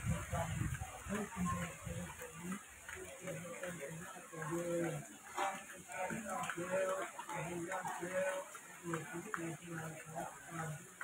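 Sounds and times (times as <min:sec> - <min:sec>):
faint voices speaking: 0:00.0 - 0:11.0.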